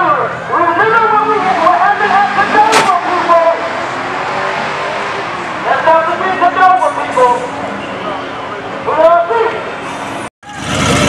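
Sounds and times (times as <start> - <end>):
people talking: 0.0 - 3.7, 5.6 - 9.7.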